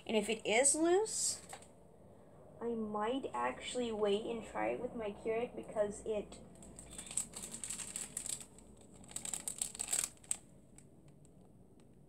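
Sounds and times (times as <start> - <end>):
plastic wrappers crinkling: 6.6 - 10.9.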